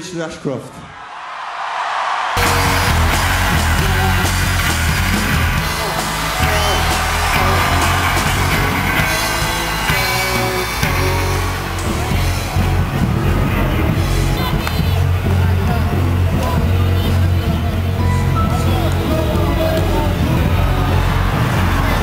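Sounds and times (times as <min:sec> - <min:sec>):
rock band playing: 0:02.4 - 0:22.0.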